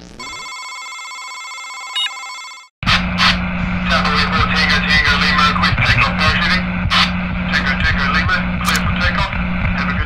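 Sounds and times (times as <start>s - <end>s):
steady low hum: 2.8s - 10.0s.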